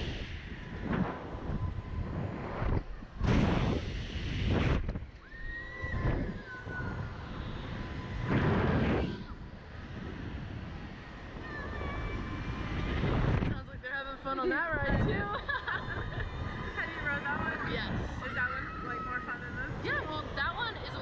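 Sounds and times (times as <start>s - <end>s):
wind rushing over microphone: 0.0s - 21.0s
people laughing and squealing: 15.1s - 17.0s.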